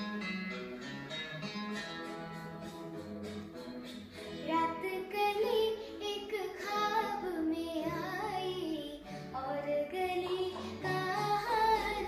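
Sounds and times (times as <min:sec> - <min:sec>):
girl singing: 0:04.4 - 0:12.0.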